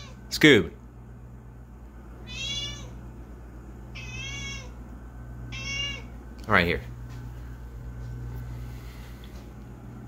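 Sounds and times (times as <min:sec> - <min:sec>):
cat meowing: 0:00.0 - 0:00.2, 0:02.2 - 0:03.0, 0:03.9 - 0:04.8, 0:05.5 - 0:06.2.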